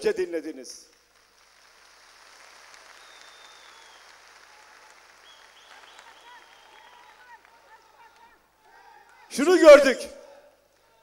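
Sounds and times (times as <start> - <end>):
audience applauding: 0.9 - 9.3.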